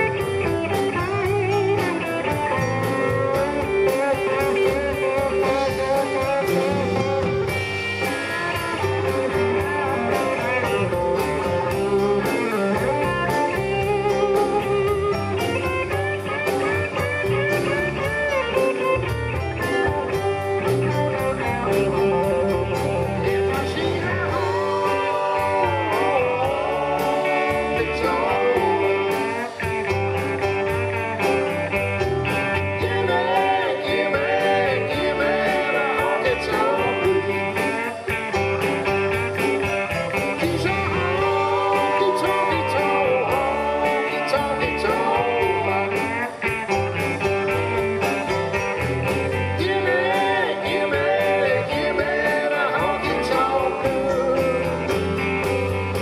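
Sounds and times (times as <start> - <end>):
blues-rock band playing: 0.0 - 56.0
electric guitar lead: 0.0 - 56.0.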